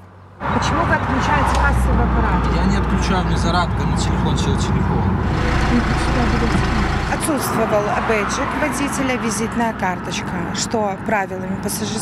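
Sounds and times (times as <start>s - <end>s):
minibus engine idling: 5.3s - 7.8s.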